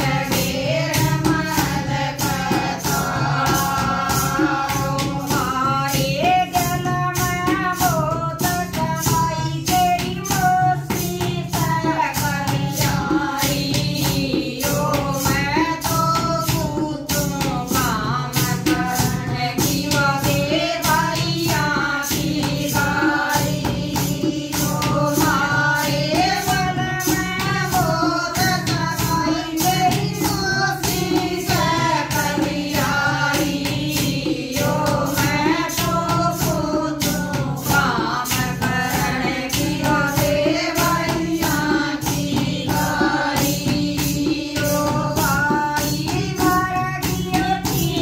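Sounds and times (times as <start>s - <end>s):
clay pot drum: 0.0s - 48.0s
hand drum beat: 0.0s - 48.0s
jingling percussion: 0.0s - 48.0s
women singing folk song: 0.0s - 48.0s.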